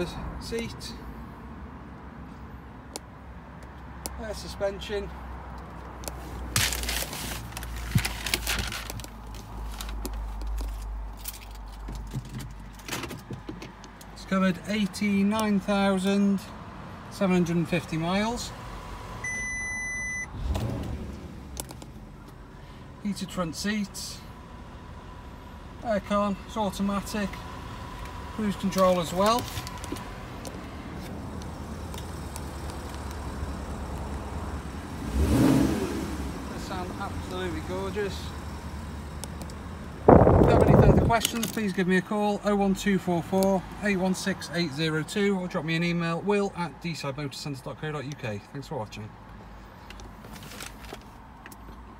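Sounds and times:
low hum in car cabin: 19.2 - 35.0, 36.3 - 41.8.

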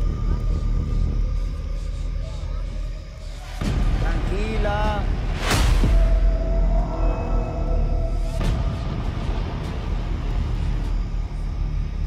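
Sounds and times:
low rumbling score: 0.0 - 12.0.

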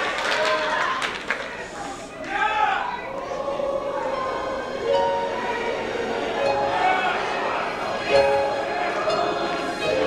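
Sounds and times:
gospel choir singing: 2.9 - 10.0.

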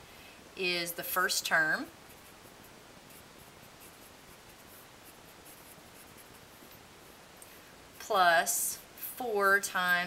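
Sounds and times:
marker scratching on paper: 1.6 - 6.8.

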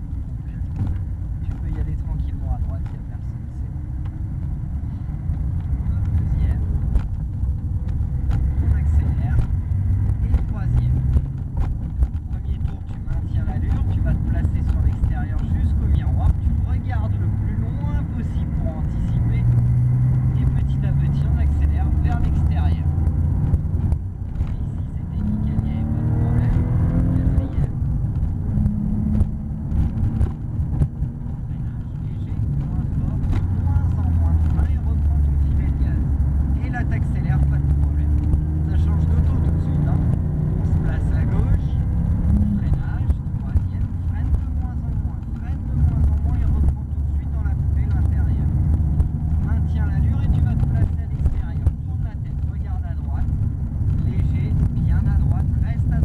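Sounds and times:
car engine accelerating hard: 0.0 - 56.0.

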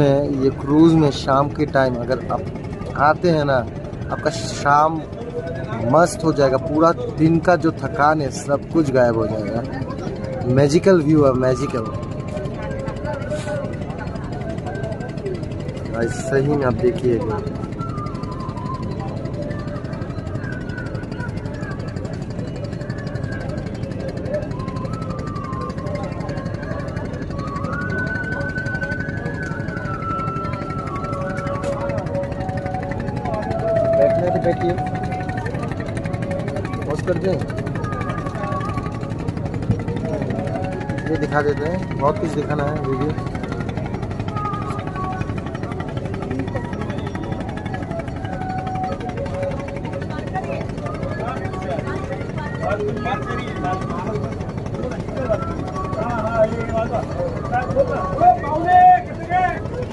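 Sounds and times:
background music: 0.0 - 59.9
boat engine rumbling: 0.0 - 59.9
murmur of voices: 0.0 - 59.9.

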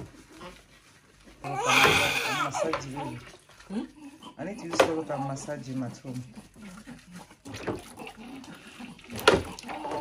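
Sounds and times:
baby crying: 1.4 - 3.1.

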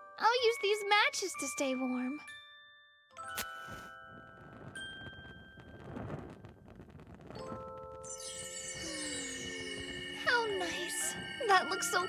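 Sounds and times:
soft chiming music notes: 0.0 - 6.4, 7.4 - 12.0.

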